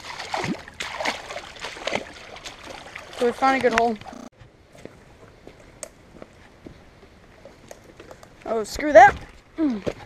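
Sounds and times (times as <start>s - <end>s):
feet splashing through water: 0.0s - 4.2s
creek trickling: 0.0s - 4.3s.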